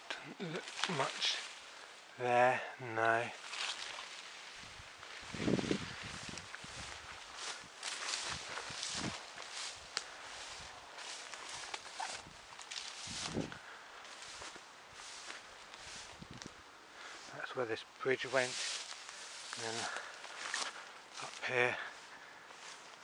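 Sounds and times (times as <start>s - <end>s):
footsteps walking outdoors: 0.0s - 23.0s.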